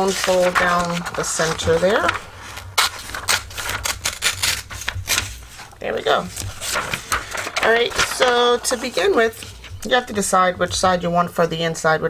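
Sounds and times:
bone folder creasing paper: 0:00.0 - 0:05.7, 0:06.3 - 0:09.8
paper rustling: 0:00.0 - 0:10.0.

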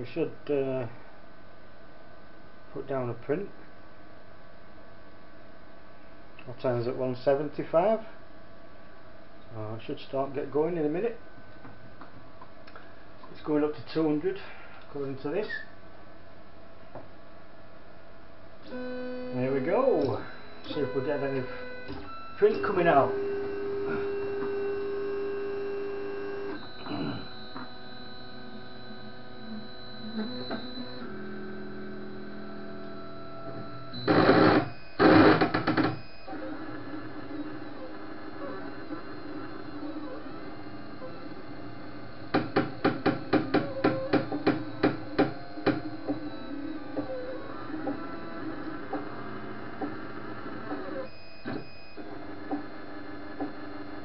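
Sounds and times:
fans humming: 0:06.3 - 0:54.0
stepper motors whining: 0:18.7 - 0:54.0.

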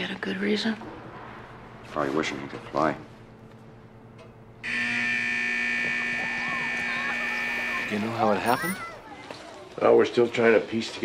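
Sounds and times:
electric school bell buzzing: 0:04.6 - 0:09.0
faint children's voices: 0:05.8 - 0:10.0.

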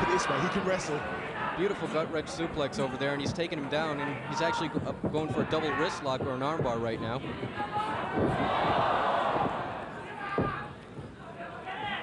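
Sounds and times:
arena crowd shouting and cheering: 0:00.0 - 0:12.0.

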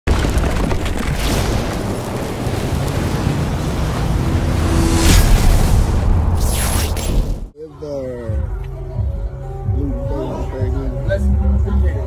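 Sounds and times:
deep rumble: 0:00.1 - 0:07.5
rushing wind-like noise: 0:01.8 - 0:07.0.

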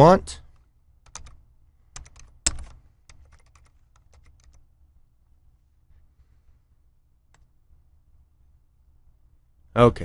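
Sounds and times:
keyboard typing: 0:01.0 - 0:04.7.

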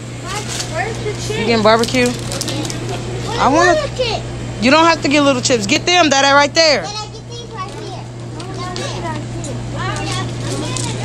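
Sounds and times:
steady low hum: 0:00.0 - 0:11.0
children talking softly: 0:06.8 - 0:11.0.

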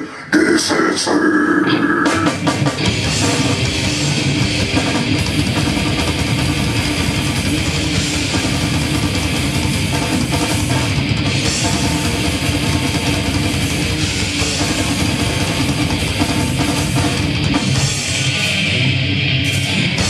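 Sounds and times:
distorted electric guitars: 0:00.0 - 0:20.0
drums: 0:00.0 - 0:20.0
bass guitar: 0:01.6 - 0:20.0.

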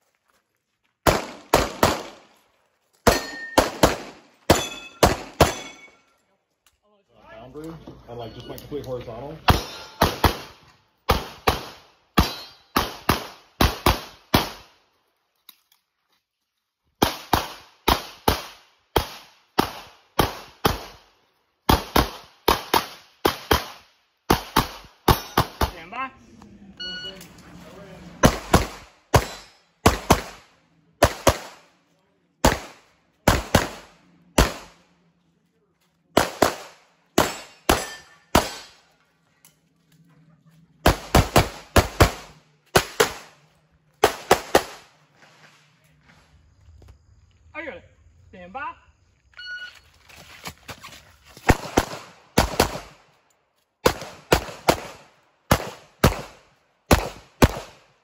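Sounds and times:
pistol shots: 0:01.0 - 0:02.3, 0:03.0 - 0:05.9, 0:09.5 - 0:14.7, 0:17.0 - 0:25.8, 0:28.2 - 0:31.7, 0:32.4 - 0:34.8, 0:36.1 - 0:38.9, 0:40.8 - 0:43.4, 0:44.0 - 0:44.9, 0:51.5 - 0:53.0, 0:53.8 - 0:57.9.

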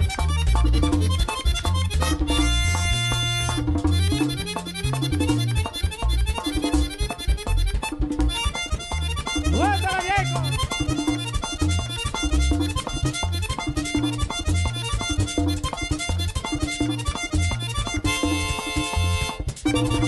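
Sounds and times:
button accordion melody: 0:00.0 - 0:20.0
caja drum beat: 0:00.0 - 0:20.0
electric bass: 0:00.0 - 0:20.0
guacharaca scraper: 0:00.0 - 0:20.0.

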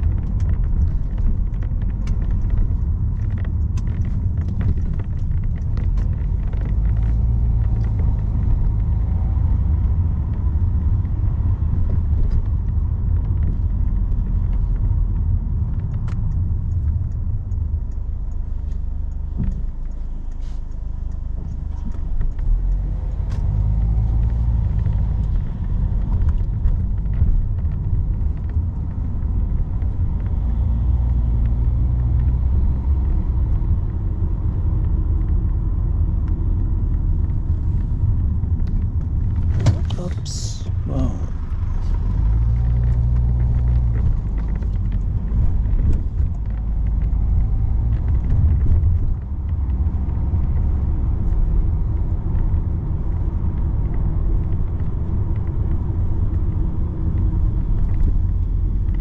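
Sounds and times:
car engine and road rumble: 0:00.0 - 0:59.0.

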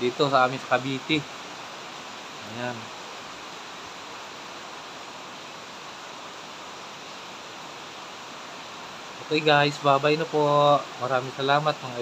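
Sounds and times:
heavy rain hissing: 0:00.0 - 0:12.0.

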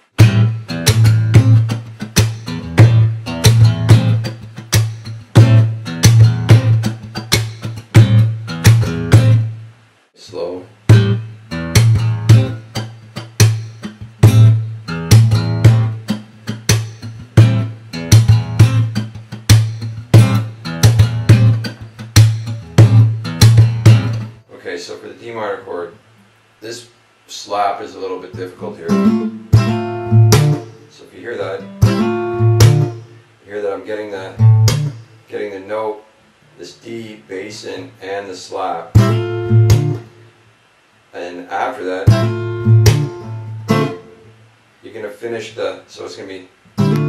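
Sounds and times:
percussive acoustic guitar groove: 0:00.0 - 0:09.7, 0:10.8 - 0:24.5, 0:28.4 - 0:33.3, 0:34.2 - 0:35.3, 0:38.9 - 0:40.4, 0:41.6 - 0:44.4, 0:46.7 - 0:47.0.

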